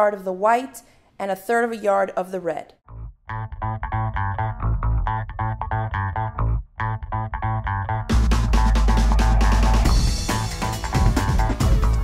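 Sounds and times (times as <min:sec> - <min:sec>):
bass guitar line: 0:02.8 - 0:12.0
plucked guitar notes: 0:02.9 - 0:12.0.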